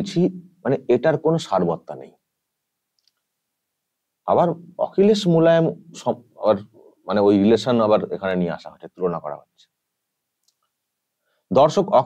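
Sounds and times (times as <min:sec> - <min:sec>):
man speaking: 0:00.0 - 0:02.2, 0:04.3 - 0:09.7, 0:11.5 - 0:12.0
faint clicks: 0:02.9 - 0:03.3, 0:10.4 - 0:10.8.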